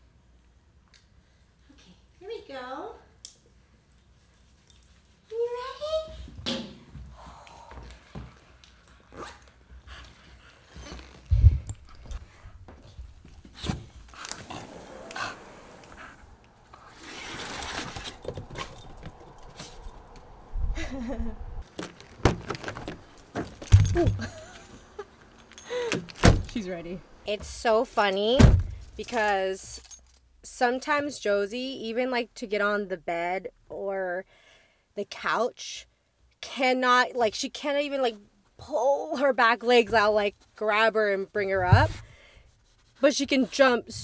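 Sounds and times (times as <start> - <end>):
small metal items jingling: 16.9 - 20.2, 21.9 - 26.7.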